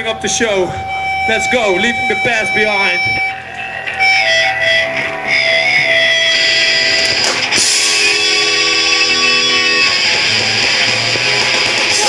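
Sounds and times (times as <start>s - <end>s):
electric guitar: 0.7s - 12.0s
punk band playing live: 0.9s - 12.0s.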